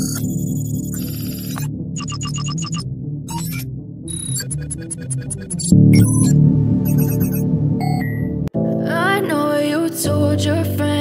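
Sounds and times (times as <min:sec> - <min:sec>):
high-pitched digital beeps: 0:00.0 - 0:08.4
low electronic hum: 0:00.0 - 0:08.5.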